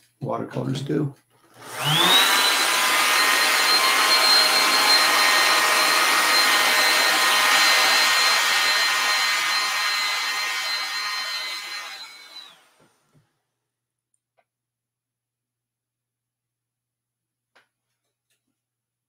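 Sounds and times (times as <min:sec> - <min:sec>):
hair dryer blowing: 0:01.5 - 0:13.2.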